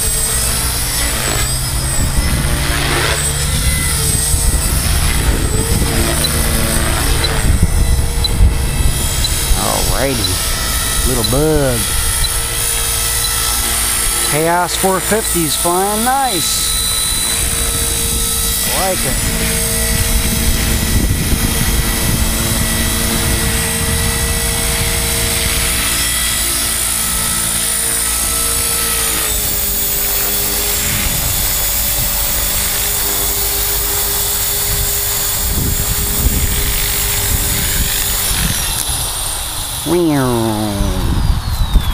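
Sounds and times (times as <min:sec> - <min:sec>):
model helicopter rotor whine: 0:00.0 - 0:41.9.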